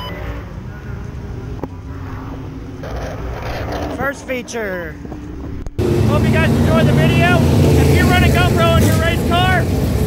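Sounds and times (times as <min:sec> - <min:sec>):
race car engine running: 0:02.4 - 0:10.0.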